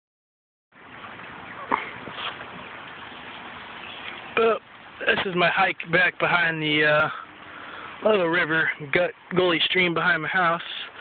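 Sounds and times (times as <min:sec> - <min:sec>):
outdoor background hiss: 0:00.7 - 0:11.0.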